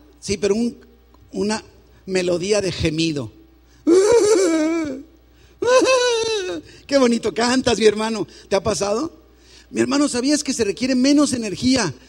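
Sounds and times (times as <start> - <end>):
man wailing: 3.9 - 6.6.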